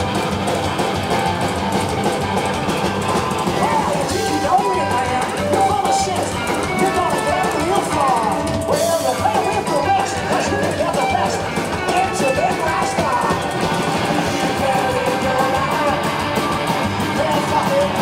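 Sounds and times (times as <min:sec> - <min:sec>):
drum kit steady beat: 0:00.0 - 0:18.0
electric guitar lead lines: 0:00.0 - 0:18.0
live rock and roll band: 0:00.0 - 0:18.0
upright bass: 0:00.0 - 0:18.0.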